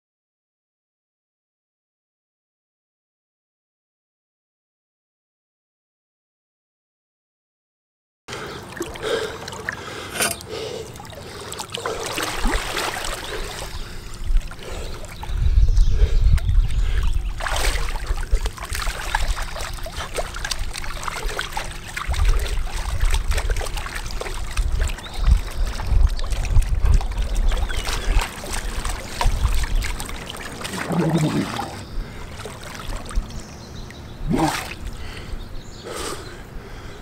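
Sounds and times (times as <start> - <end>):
pool water splashing and lapping: 8.3 - 15.4, 16.4 - 37.0.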